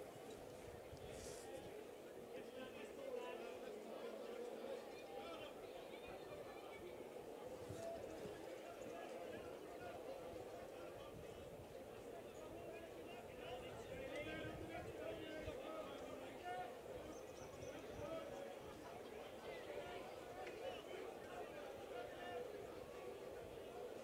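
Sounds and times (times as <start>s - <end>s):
faint background voices talking: 0.0s - 24.0s
murmur of outdoor noise: 0.0s - 24.0s.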